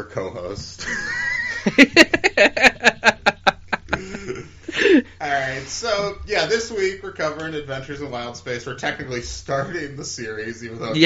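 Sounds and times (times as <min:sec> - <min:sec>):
man laughing hard: 0:00.8 - 0:05.1.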